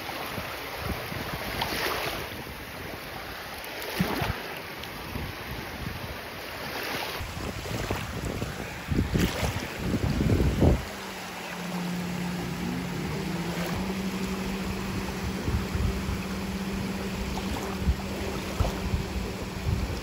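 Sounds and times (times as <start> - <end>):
gentle surf: 0.0 - 20.0
wind buffeting microphone: 7.2 - 20.0
low engine drone: 8.1 - 20.0.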